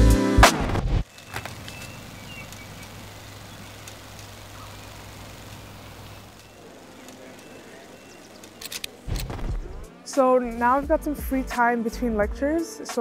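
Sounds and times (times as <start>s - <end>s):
distant traffic hum: 1.0s - 10.3s.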